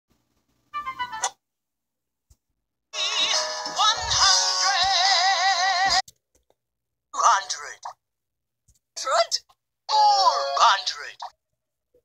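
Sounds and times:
music through device speaker: 0:03.0 - 0:06.0
synthesized singing voice: 0:03.0 - 0:06.0.

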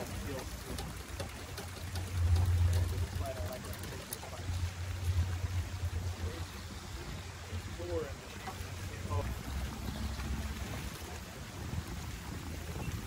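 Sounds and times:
low rumble in gusts: 0:00.0 - 0:13.0.

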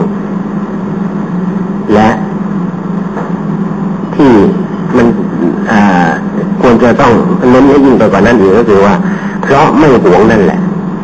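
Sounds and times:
steady low hum with hiss: 0:00.0 - 0:11.0
man speaking: 0:01.8 - 0:02.4, 0:04.0 - 0:10.7.

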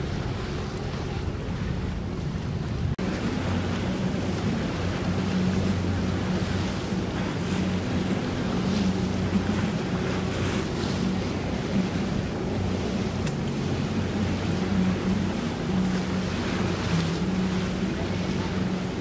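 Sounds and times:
outboard engine droning: 0:00.0 - 0:19.0
water rushing and sloshing: 0:00.0 - 0:19.0
wind buffeting microphone: 0:00.0 - 0:19.0.

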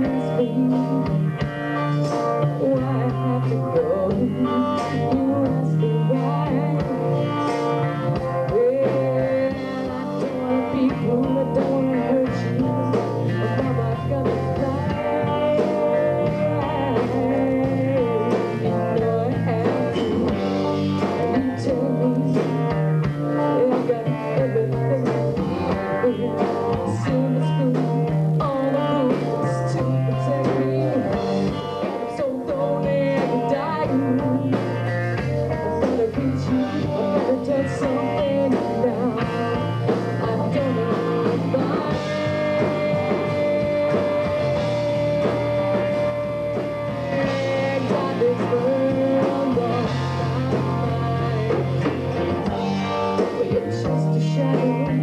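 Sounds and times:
drum kit: 0:00.0 - 0:55.0
electric guitars: 0:00.0 - 0:55.0
woman singing: 0:00.0 - 0:55.0.

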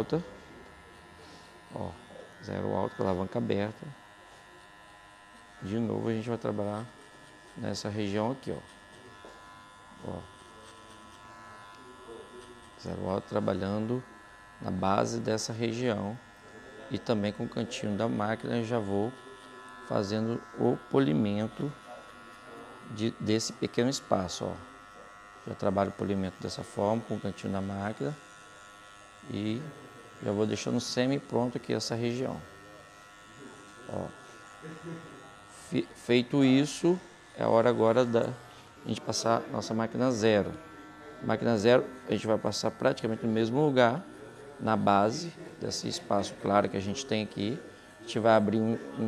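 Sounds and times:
electric hair clipper humming: 0:00.0 - 0:49.0.

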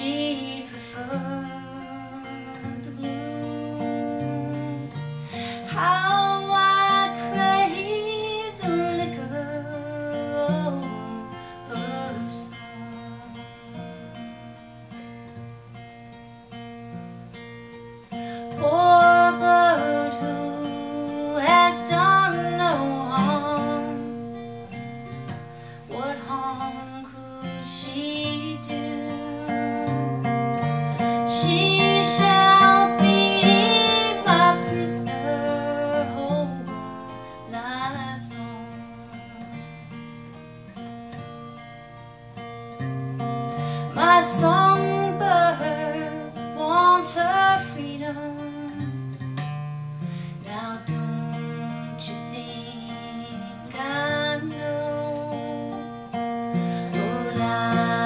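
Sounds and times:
woman singing: 0:00.0 - 0:14.4, 0:18.2 - 0:39.8, 0:43.5 - 0:49.1, 0:50.3 - 0:58.0
acoustic guitar: 0:00.0 - 0:58.0.

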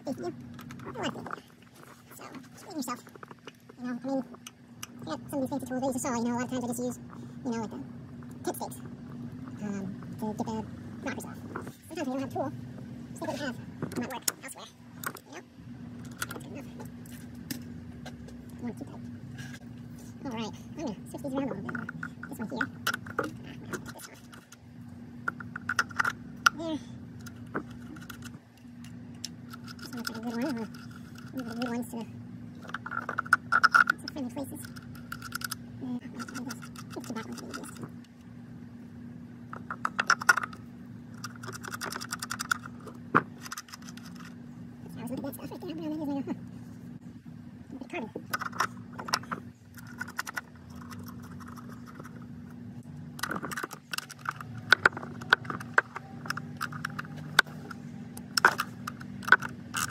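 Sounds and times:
steady low hum: 0:00.0 - 0:59.9
clicks and rattles of connectors: 0:25.3 - 0:26.6, 0:32.6 - 0:35.6, 0:39.5 - 0:44.4, 0:48.3 - 0:52.3, 0:53.2 - 0:59.9.

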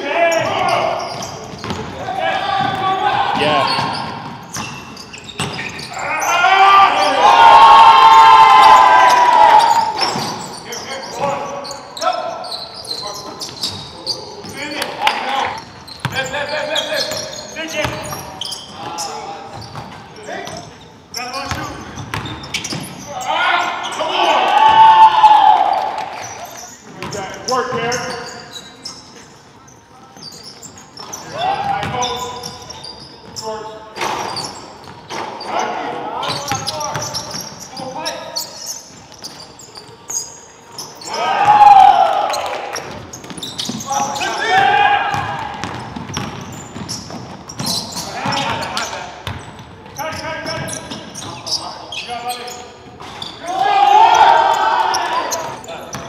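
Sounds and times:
loud shouting voices: 0:02.0 - 0:04.1, 0:05.8 - 0:10.2, 0:23.1 - 0:26.6, 0:41.0 - 0:42.8, 0:43.9 - 0:45.6, 0:53.4 - 0:55.7
basketball bouncing on hardwood: 0:45.1 - 0:48.6.

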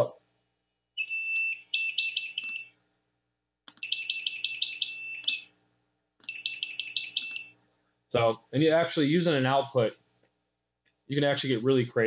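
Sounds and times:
piezo buzzer beeping: 0:03.8 - 0:05.5, 0:06.2 - 0:07.5.

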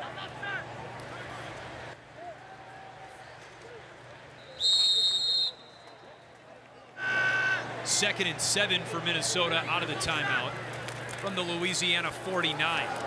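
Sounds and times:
low stadium crowd noise: 0:00.0 - 0:13.0
shrill whistle blast: 0:04.4 - 0:05.9.

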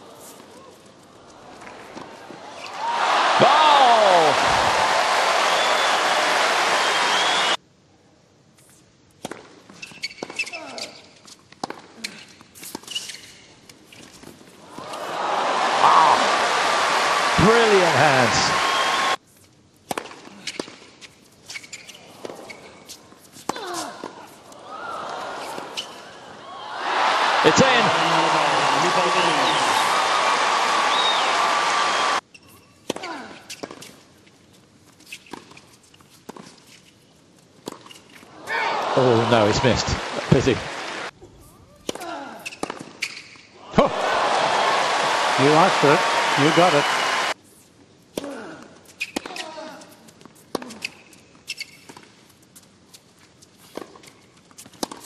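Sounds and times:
crowd shouts: 0:02.6 - 0:07.6, 0:14.8 - 0:19.2, 0:26.4 - 0:32.2, 0:38.4 - 0:41.1, 0:43.7 - 0:47.4
crowd cheering and applauding: 0:02.7 - 0:07.6, 0:14.8 - 0:19.2, 0:26.4 - 0:32.2, 0:38.4 - 0:41.1, 0:43.8 - 0:47.4.

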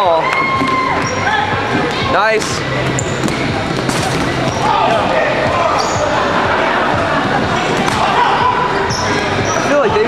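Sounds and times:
players' voices: 0:01.0 - 0:10.0
rubber balls bouncing on hardwood: 0:02.4 - 0:04.6.

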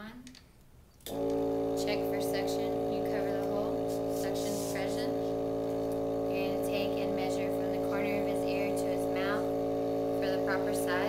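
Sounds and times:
suction unit motor humming: 0:01.0 - 0:11.0
people talking: 0:01.8 - 0:05.3, 0:06.3 - 0:09.5, 0:10.2 - 0:11.0.

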